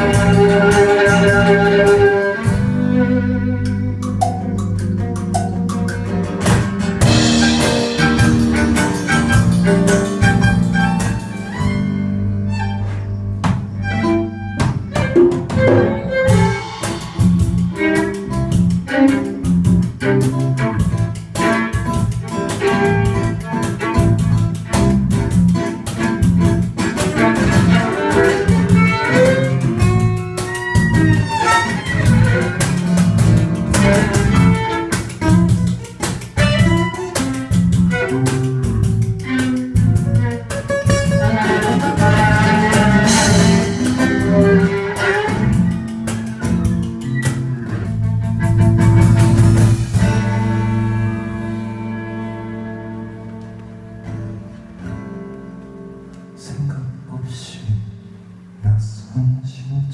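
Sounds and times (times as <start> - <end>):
bowed violin: 0.0 - 4.4, 5.0 - 53.6
live band playing: 0.0 - 56.2.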